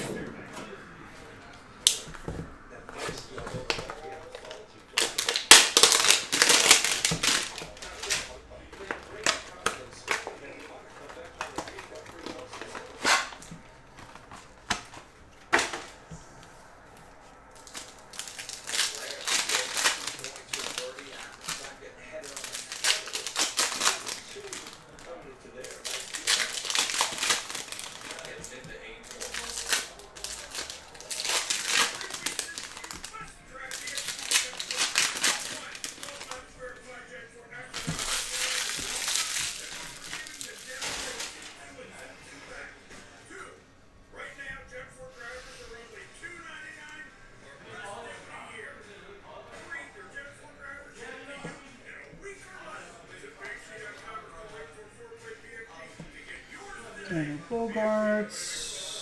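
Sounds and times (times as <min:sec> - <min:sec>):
cellophane and foil crinkling: 0:03.0 - 0:16.0, 0:17.5 - 0:36.8, 0:37.6 - 0:41.6.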